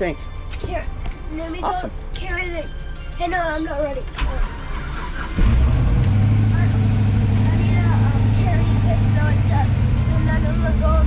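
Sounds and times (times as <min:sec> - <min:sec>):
engine starting and idling: 0:04.1 - 0:11.0.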